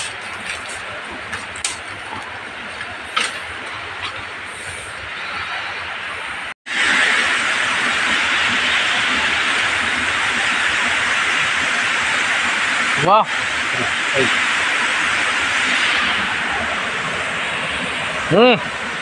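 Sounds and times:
twigs crackling underfoot: 0:00.0 - 0:04.2
faint steady rush: 0:00.0 - 0:19.0
waterfall rushing: 0:00.0 - 0:19.0.

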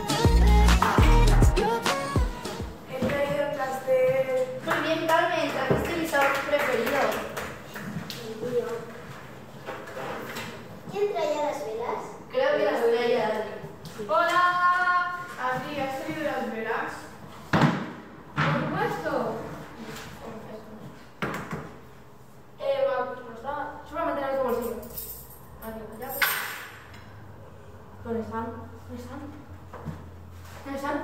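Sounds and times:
young people talking: 0:02.9 - 0:07.3, 0:10.9 - 0:17.1.

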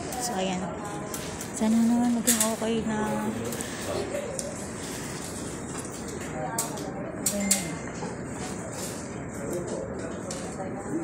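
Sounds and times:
chatter of people: 0:00.0 - 0:11.0.

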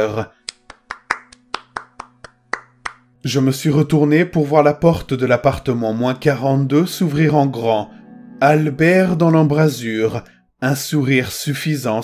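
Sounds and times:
person clapping hands: 0:00.4 - 0:03.1.

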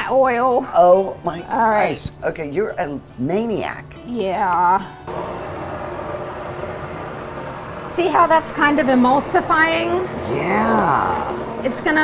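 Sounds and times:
immersion blender running: 0:05.1 - 0:12.0.

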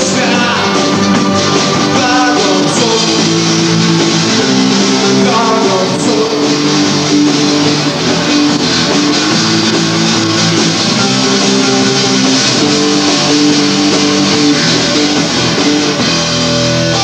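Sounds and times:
bass guitar: 0:00.0 - 0:17.0
electric guitars: 0:00.0 - 0:17.0.

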